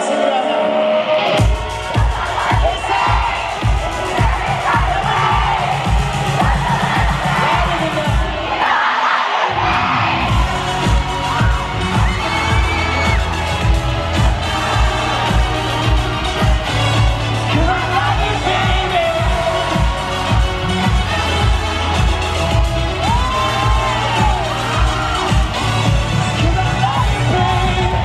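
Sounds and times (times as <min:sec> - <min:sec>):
live pop band playing: 0:00.0 - 0:08.5, 0:10.2 - 0:28.0
arena crowd cheering: 0:00.0 - 0:28.0
kick drum beat: 0:01.4 - 0:08.4.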